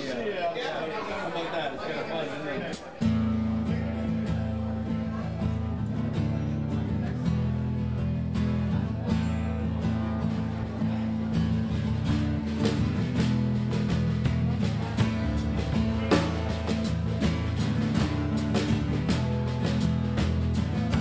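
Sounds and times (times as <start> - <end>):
acoustic guitar strumming: 3.0 - 21.0.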